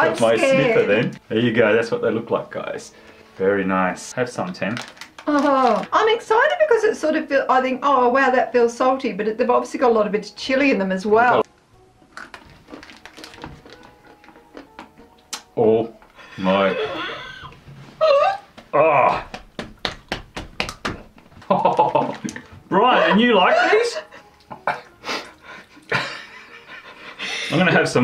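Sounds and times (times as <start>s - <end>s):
peanuts being chewed: 12.1s - 15.5s.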